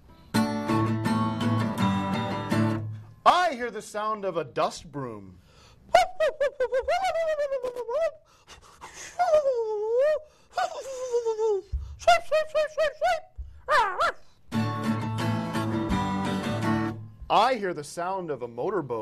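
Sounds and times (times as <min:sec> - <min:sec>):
acoustic guitar chord strummed: 0:00.1 - 0:03.2, 0:14.5 - 0:17.3
person laughing high voice: 0:05.9 - 0:08.2, 0:08.9 - 0:14.2.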